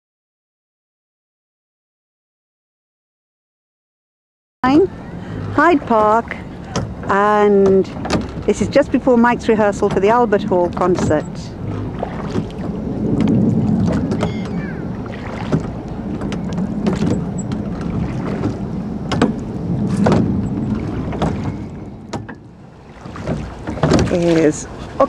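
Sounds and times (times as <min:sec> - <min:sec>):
water rushing past rowing boat: 0:04.6 - 0:25.0
oars knocking in rowlocks: 0:04.8 - 0:25.0.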